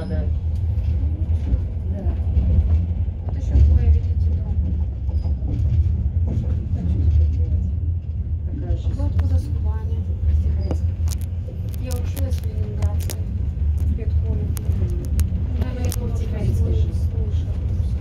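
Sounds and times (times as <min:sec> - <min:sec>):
train low rumble: 0:00.0 - 0:18.0.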